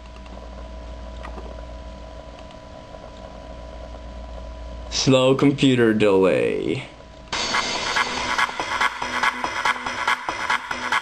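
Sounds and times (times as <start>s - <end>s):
electronic dance music: 7.4s - 11.0s.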